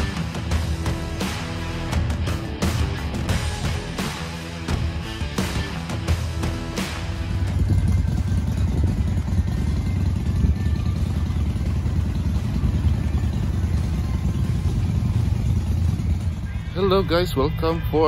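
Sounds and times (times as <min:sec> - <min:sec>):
motorcycle engine running: 0:00.0 - 0:18.0
rock music: 0:00.0 - 0:18.0.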